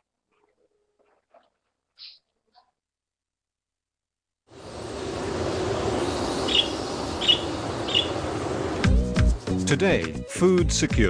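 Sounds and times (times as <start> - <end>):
low rumbling noise: 4.5 - 9.4.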